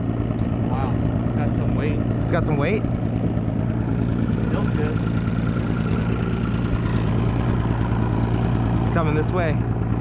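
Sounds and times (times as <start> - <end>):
outboard motor idling: 0.0 - 10.0.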